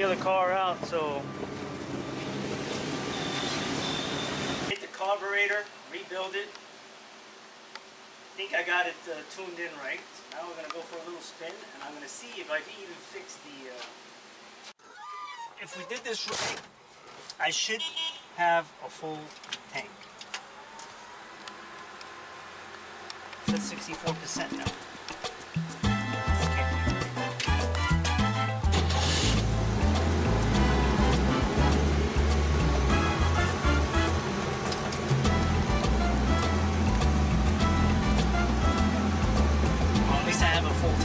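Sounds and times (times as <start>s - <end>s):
car engine idling: 28.7s - 41.0s.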